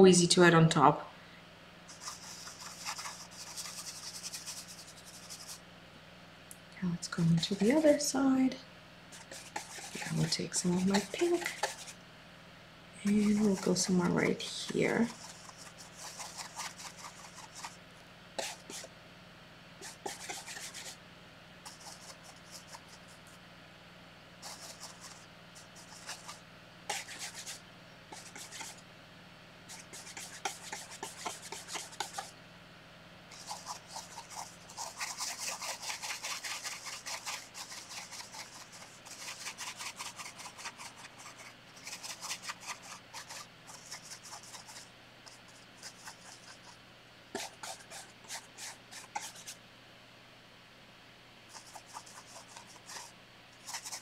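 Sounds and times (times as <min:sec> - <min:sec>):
brush stirring paint on paper plate: 0:01.9 - 0:05.6, 0:07.1 - 0:08.4, 0:09.1 - 0:12.0, 0:13.0 - 0:17.8, 0:18.4 - 0:18.9, 0:19.8 - 0:21.0, 0:21.6 - 0:23.4, 0:24.4 - 0:28.8, 0:29.7 - 0:32.4, 0:33.3 - 0:49.6, 0:51.5 - 0:54.0
paintbrush scrubbing canvas: 0:01.9 - 0:05.6, 0:09.1 - 0:12.0, 0:13.0 - 0:17.8, 0:18.4 - 0:18.9, 0:19.8 - 0:21.0, 0:21.6 - 0:23.3, 0:24.4 - 0:28.8, 0:29.7 - 0:32.3, 0:33.3 - 0:49.6, 0:51.5 - 0:54.0.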